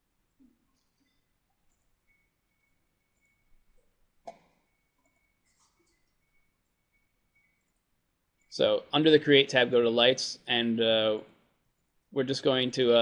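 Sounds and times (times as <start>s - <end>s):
faint high whine: 4.6s - 11.2s
computer mouse clicks: 7.4s - 7.9s.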